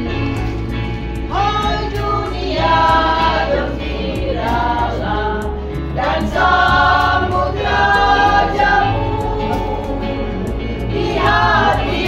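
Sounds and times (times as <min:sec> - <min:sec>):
instrumental backing with bass: 0:00.0 - 0:12.0
women's vocal group singing: 0:01.3 - 0:12.0.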